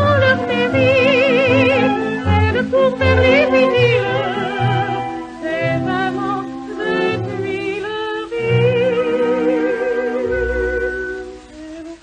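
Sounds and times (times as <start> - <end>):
orchestral accompaniment: 0.0 - 12.0
woman singing with vibrato: 0.0 - 12.0.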